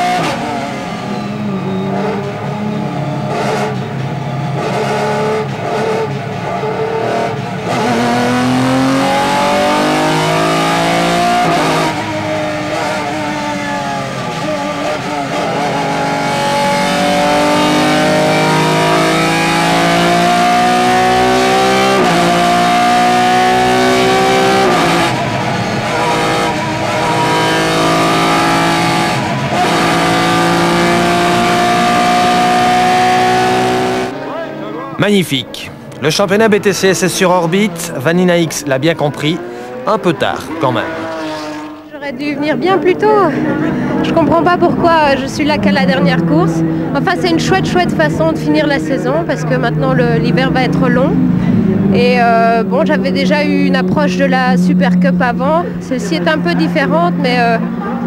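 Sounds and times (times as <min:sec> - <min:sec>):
race car engine through gears: 0:00.0 - 0:58.0.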